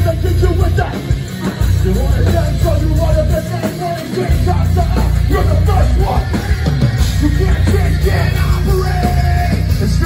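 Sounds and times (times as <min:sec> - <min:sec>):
heavy rock band playing: 0:00.0 - 0:10.0.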